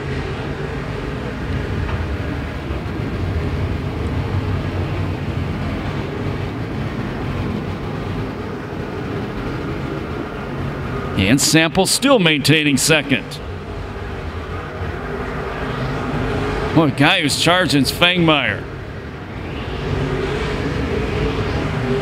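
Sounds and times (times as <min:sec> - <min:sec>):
race car engines droning: 0:00.0 - 0:22.0.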